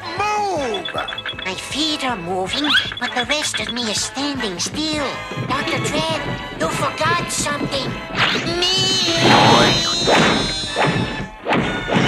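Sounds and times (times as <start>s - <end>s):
background music: 0.0s - 12.0s
cartoon thumps and bangs: 4.8s - 12.0s.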